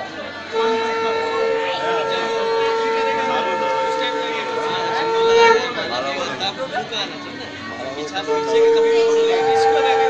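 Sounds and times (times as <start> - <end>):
conch shell blown in long note: 0.4 - 6.3, 8.2 - 10.0.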